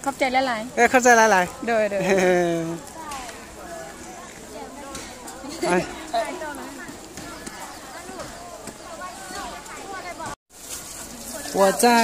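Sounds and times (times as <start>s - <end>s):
market chatter: 0.0s - 12.0s.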